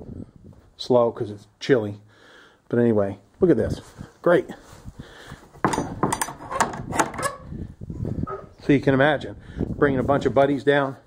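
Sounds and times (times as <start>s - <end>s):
wooden door latch rattling: 5.6s - 7.5s.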